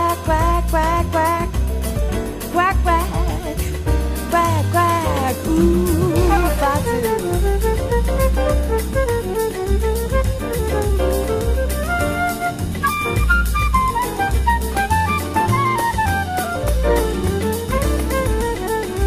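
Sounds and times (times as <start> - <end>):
big band jazz: 0.0 - 19.0
drums: 0.0 - 19.0
bass pulse: 0.3 - 18.7.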